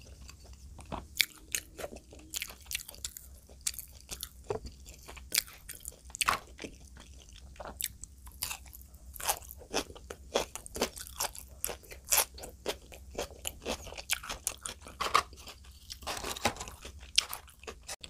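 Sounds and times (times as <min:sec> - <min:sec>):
mouth chewing and crunching food: 0:00.0 - 0:18.0.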